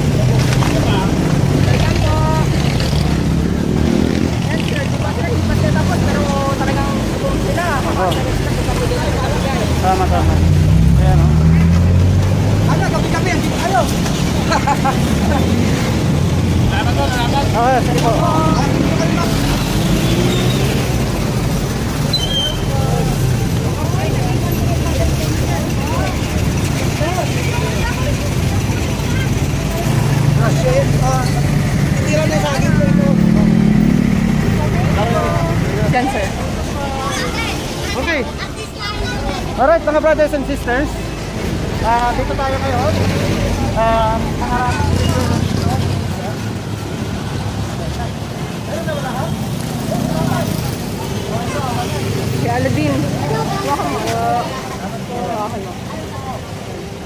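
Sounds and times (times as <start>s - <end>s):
indistinct voices talking: 0.0s - 57.0s
street traffic rumble: 0.0s - 57.0s.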